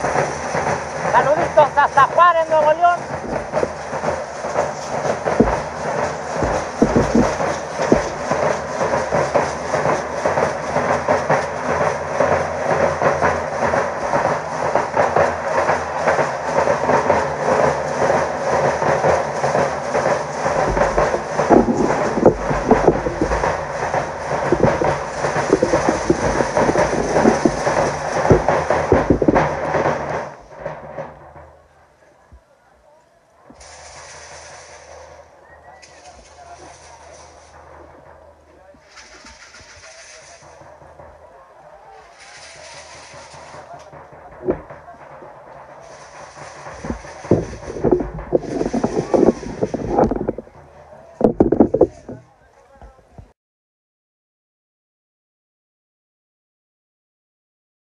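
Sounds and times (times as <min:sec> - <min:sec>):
drum band beating fast rhythm: 0:00.0 - 0:31.0, 0:42.2 - 0:50.8.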